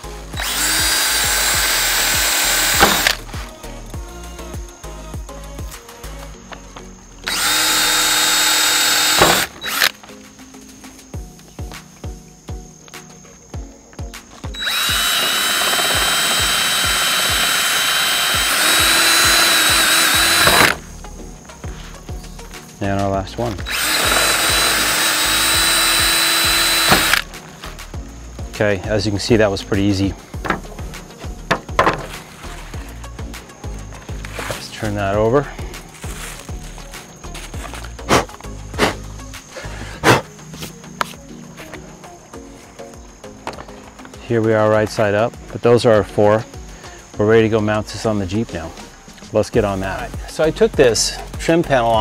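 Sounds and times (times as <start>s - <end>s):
cordless drill whining: 0.0s - 3.3s, 7.2s - 10.0s, 14.5s - 20.9s, 23.5s - 27.3s
background music with beat: 0.0s - 52.0s
plastic panel handling noises: 30.4s - 30.7s, 31.5s - 32.3s.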